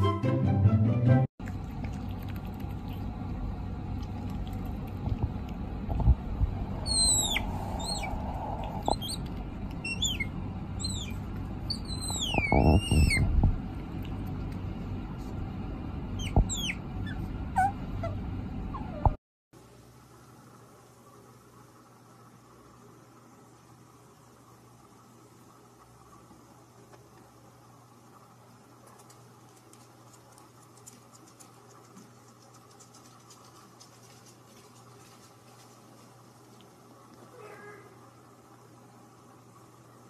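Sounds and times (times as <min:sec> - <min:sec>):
bird chirping: 0:06.7 - 0:13.3, 0:16.2 - 0:18.1
cat meowing: 0:37.3 - 0:38.0.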